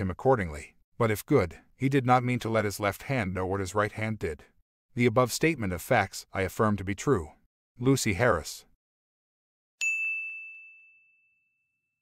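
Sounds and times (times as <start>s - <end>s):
bell-like notification ding: 9.8s - 11.9s.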